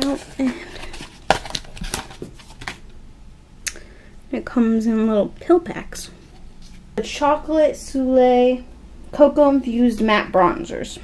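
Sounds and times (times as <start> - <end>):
card and plastic crackling: 0.0 - 2.9.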